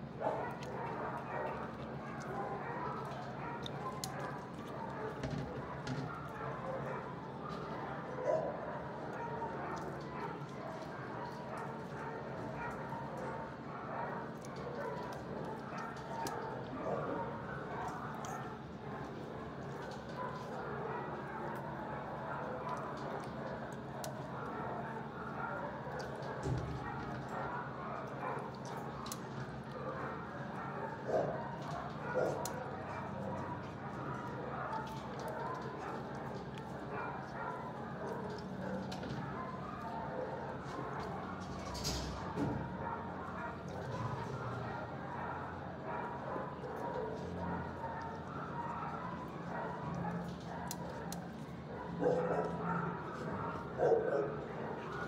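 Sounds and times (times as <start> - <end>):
many dogs barking and yipping: 0.0 - 55.0.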